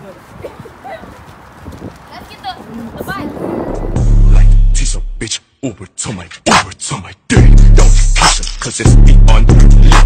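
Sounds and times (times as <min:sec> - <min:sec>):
footsteps on concrete: 0:00.0 - 0:04.2.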